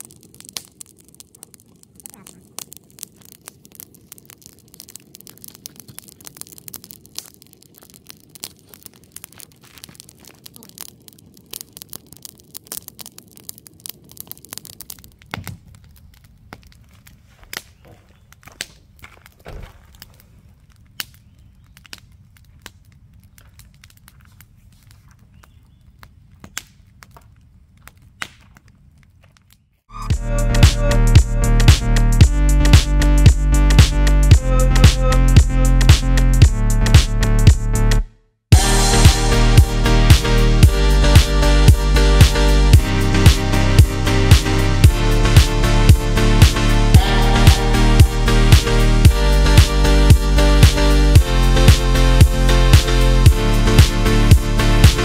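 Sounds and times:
campfire crackling and popping: 0:00.0 - 0:55.0.

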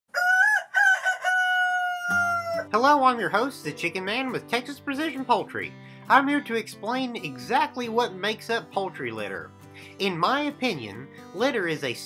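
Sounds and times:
rooster crowing: 0:00.1 - 0:02.8.

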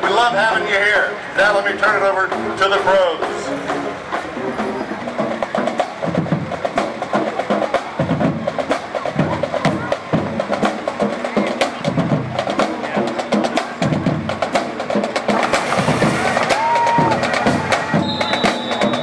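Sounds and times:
marching band playing: 0:00.0 - 0:19.0
rapid snare drum strokes: 0:01.5 - 0:19.0.

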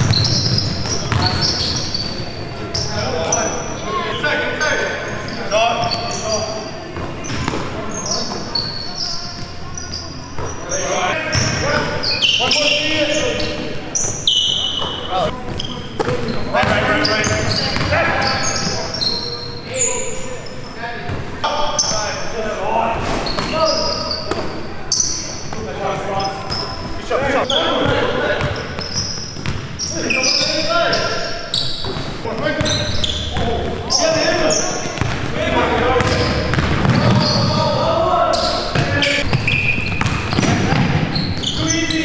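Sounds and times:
basketball bouncing on gym floor: 0:00.0 - 0:01.8, 0:29.4 - 0:29.7, 0:34.8 - 0:35.3, 0:36.0 - 0:37.6, 0:38.7 - 0:41.7
players calling out: 0:23.3 - 0:42.0.

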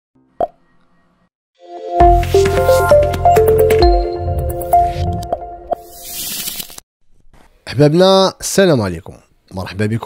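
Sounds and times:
intro music: 0:01.6 - 0:06.0.

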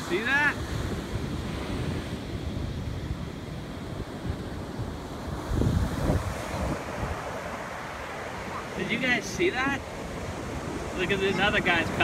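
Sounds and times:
ocean surf breaking: 0:00.0 - 0:12.0
wind buffeting microphone: 0:00.0 - 0:12.0.

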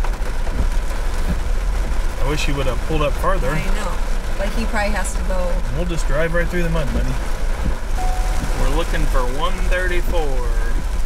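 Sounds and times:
rain on truck roof and glass: 0:00.0 - 0:11.0
truck engine rumble: 0:00.0 - 0:11.0.

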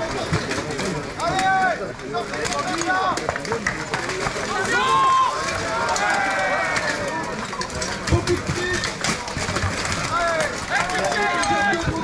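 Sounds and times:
people yelling: 0:01.2 - 0:01.9, 0:04.4 - 0:07.5, 0:09.9 - 0:12.0.

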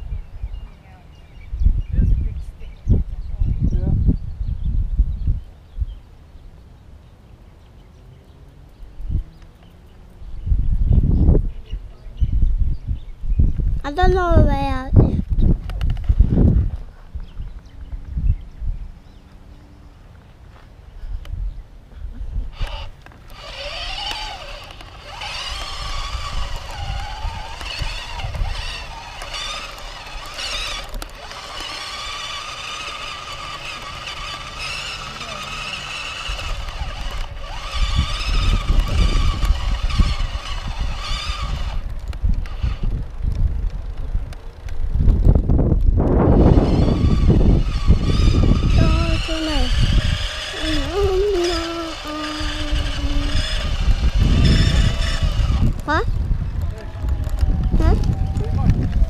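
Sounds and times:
wind buffeting: 0:00.0 - 0:06.6, 0:08.8 - 0:19.2, 0:21.0 - 0:59.0
electric motor whine: 0:22.5 - 0:44.0, 0:46.0 - 0:59.0.

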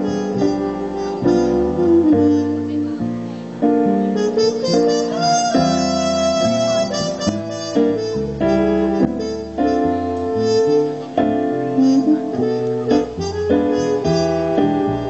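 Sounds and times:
keyboard accompaniment: 0:00.0 - 0:15.0
trumpet jazz ballad solo: 0:00.0 - 0:15.0.

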